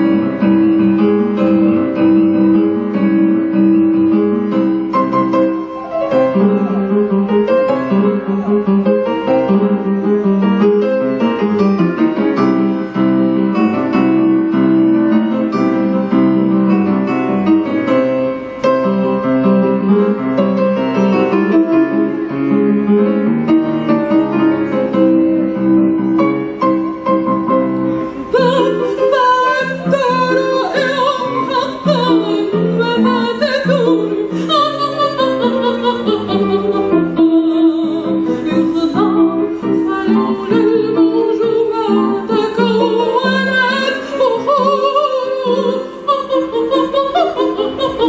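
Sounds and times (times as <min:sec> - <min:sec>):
instrumental accompaniment: 0:00.0 - 0:48.0
piano playing: 0:00.0 - 0:48.0
woman singing with vibrato: 0:28.2 - 0:48.0.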